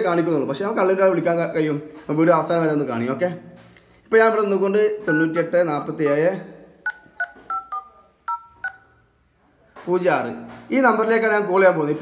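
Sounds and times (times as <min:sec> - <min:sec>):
dial-pad two-tone beeps: 0:06.8 - 0:08.8.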